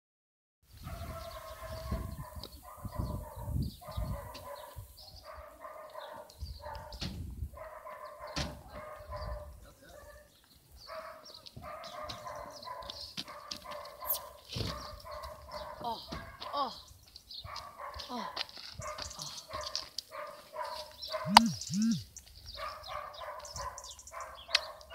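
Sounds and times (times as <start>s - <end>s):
wind gusts on microphone: 0.7s - 5.1s, 6.4s - 7.6s
animal calls: 21.1s - 24.9s.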